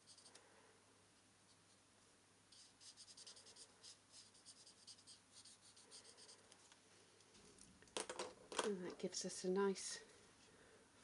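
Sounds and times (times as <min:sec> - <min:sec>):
marker tip scratching on card: 0:02.5 - 0:06.4.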